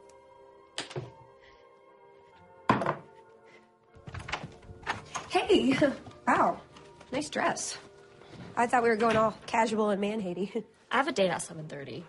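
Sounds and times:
light background music: 0.0s - 12.0s.

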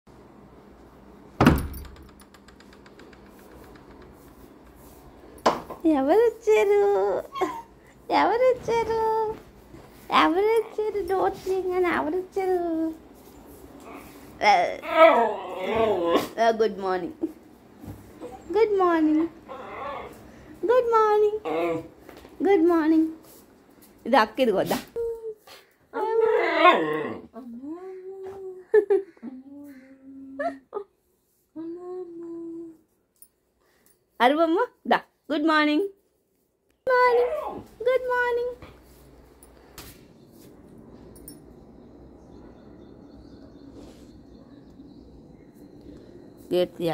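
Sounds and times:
loud knock of door opening: 1.4s - 2.2s
dog howling: 14.8s - 16.3s, 19.3s - 20.2s.

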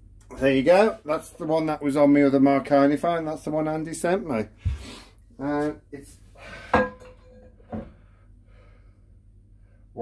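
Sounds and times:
metal platter clunk: 6.6s - 7.9s.

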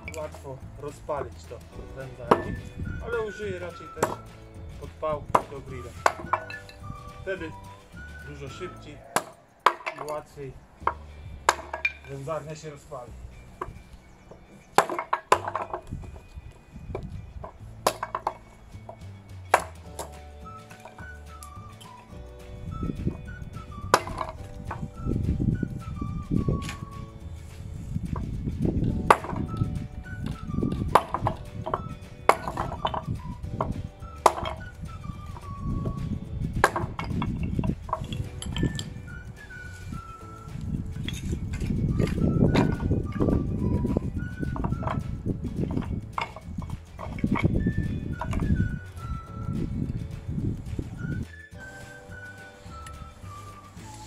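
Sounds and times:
background music: 0.0s - 54.0s
hatchet chopping wood: 1.2s - 10.2s, 10.8s - 12.2s, 14.4s - 16.3s, 16.9s - 22.0s, 22.9s - 25.0s, 26.3s - 39.2s, 41.0s - 45.0s.

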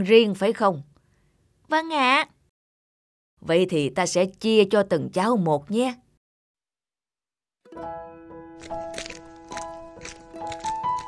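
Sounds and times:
background music ringing notes: 7.7s - 11.0s.

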